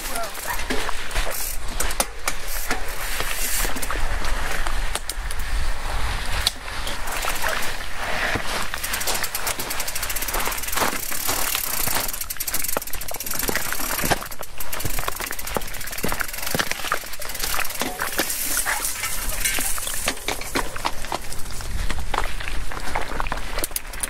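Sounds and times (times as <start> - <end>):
bike freewheel ticking: 0.0 - 2.8, 8.4 - 21.4
footsteps crunching on gravel: 6.9 - 24.0
bike frame rattling and knocking: 8.4 - 21.4.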